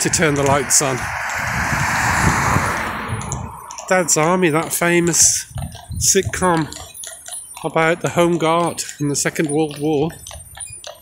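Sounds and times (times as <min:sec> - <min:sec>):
car passing on road: 0:00.0 - 0:07.4.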